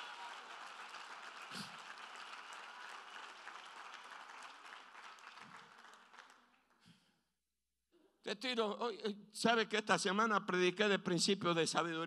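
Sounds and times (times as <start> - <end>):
crowd applauding: 0.0 - 6.8.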